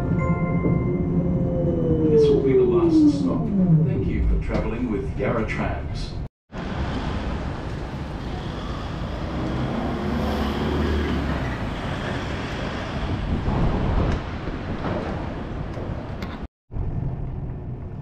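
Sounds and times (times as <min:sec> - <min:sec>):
passing vehicles rumbling: 0:06.5 - 0:16.5
heavy vehicle passing: 0:06.6 - 0:13.9.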